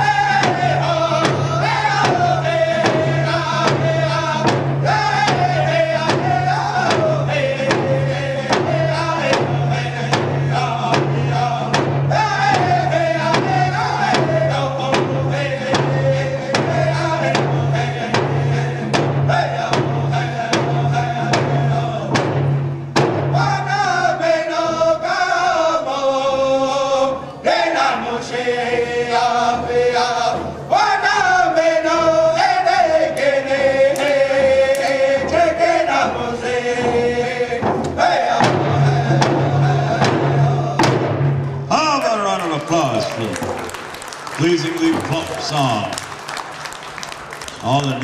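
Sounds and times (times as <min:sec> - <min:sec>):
men singing in unison: 0:00.0 - 0:22.4, 0:23.3 - 0:41.0
hand drums beating: 0:00.1 - 0:23.4.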